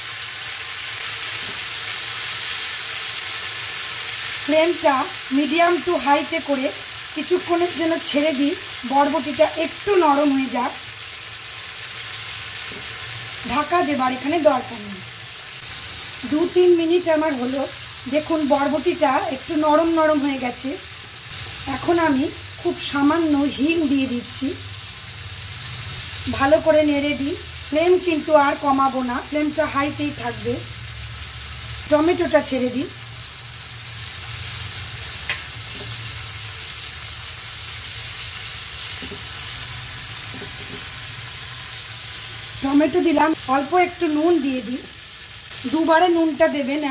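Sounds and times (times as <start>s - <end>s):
beans sizzling in oil: 0.0s - 46.9s.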